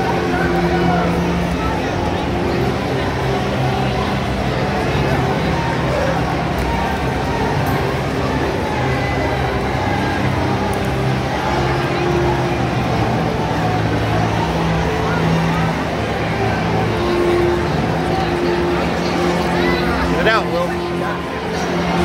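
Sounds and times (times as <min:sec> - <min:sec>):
crowd talking and calling out: 0:00.0 - 0:22.0.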